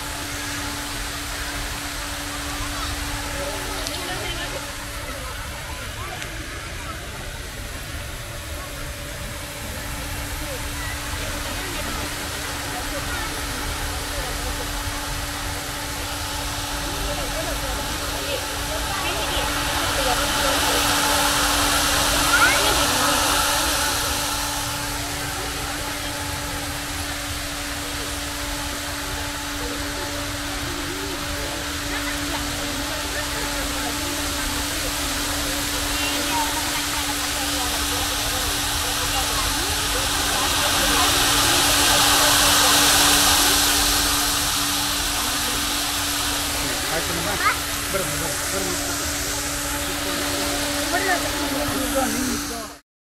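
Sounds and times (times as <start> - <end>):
fountain water splashing: 0.0 - 52.8
steady low hum: 0.0 - 52.8
low rumble: 14.7 - 31.9.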